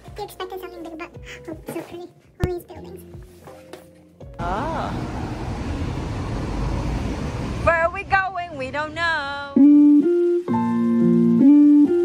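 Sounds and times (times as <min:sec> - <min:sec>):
person's voice: 0:04.4 - 0:05.1
city street traffic: 0:04.4 - 0:09.0.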